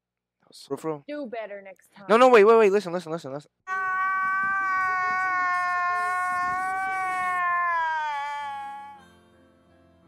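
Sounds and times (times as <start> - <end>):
long drawn-out cry: 3.7 - 9.1.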